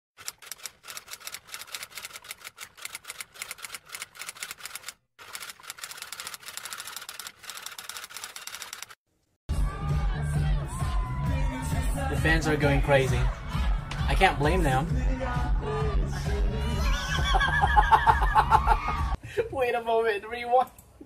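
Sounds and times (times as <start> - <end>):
typewriter keys clattering: 0.2 - 9.0
crowd cheering: 9.6 - 12.1, 13.0 - 14.4, 17.2 - 19.2.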